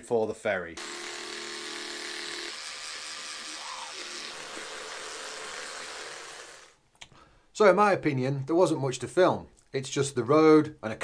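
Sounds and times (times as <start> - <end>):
electric toothbrush buzzing: 0.8 - 6.8.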